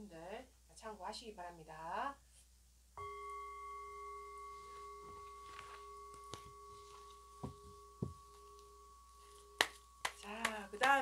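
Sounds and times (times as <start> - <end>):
chime ringing: 3.0 - 11.0.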